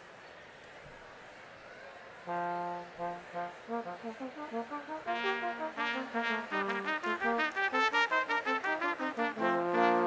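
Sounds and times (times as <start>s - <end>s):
faint crowd murmur: 0.0s - 10.0s
brass ensemble playing: 2.3s - 10.0s.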